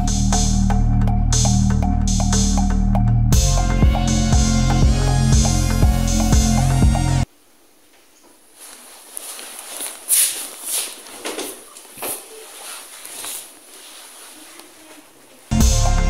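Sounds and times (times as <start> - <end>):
background music: 0.0 - 7.3, 15.5 - 16.0
footsteps: 8.0 - 15.5
clothing rustle: 8.3 - 15.5.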